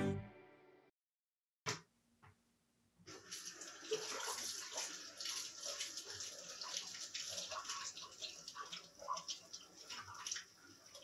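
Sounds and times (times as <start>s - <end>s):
tap water running and splashing: 3.1s - 11.0s.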